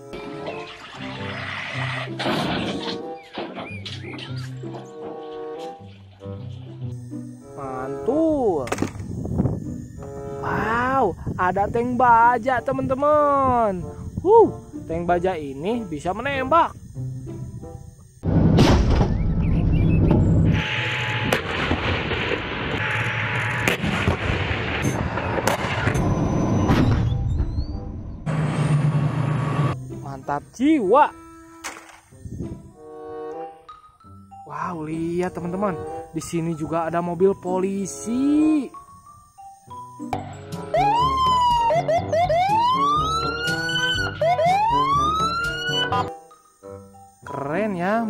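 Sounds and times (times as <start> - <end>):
sharp cracks: 8.6 - 9.1, 31.6 - 32.1
tank gun firing blast: 18.2 - 20.6, 21.2 - 27.4
police siren wailing: 40.7 - 46.1
siren short whoops: 40.8 - 45.4.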